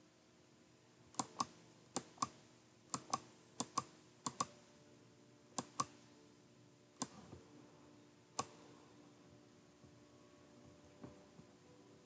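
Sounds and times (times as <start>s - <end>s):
computer mouse button clicking: 1.2s - 4.5s, 5.6s - 6.0s.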